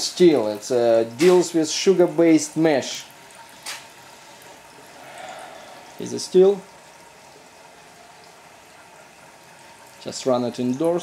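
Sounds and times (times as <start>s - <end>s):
hiss of flowing liquid: 4.2s - 6.8s.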